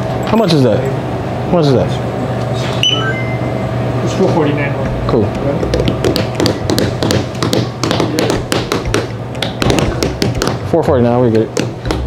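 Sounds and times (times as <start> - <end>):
low fridge hum: 0.0 - 12.0
electronic checkout beeps: 2.8 - 3.7.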